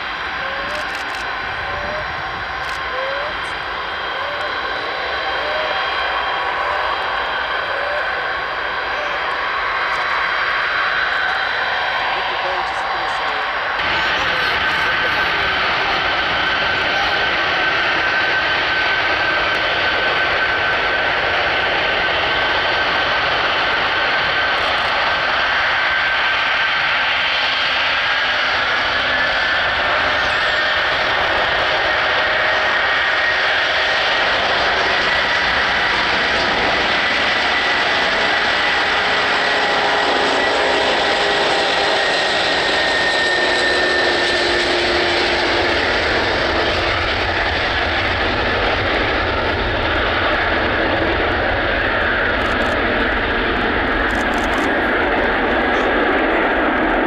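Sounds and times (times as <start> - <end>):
jet engines roaring and whining: 0.0 - 57.0.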